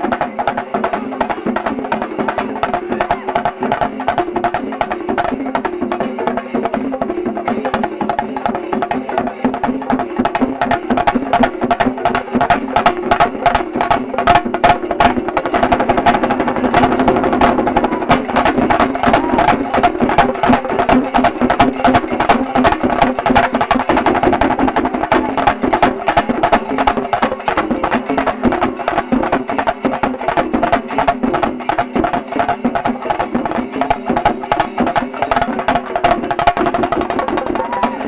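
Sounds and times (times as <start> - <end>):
drums beaten rapidly with sticks: 0.0 - 38.0.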